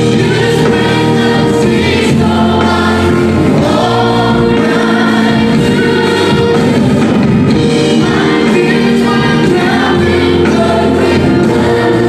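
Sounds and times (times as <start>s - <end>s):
bass guitar: 0.0s - 12.0s
keyboards: 0.0s - 12.0s
women singing lead: 0.0s - 12.0s
worship band playing: 0.0s - 12.0s.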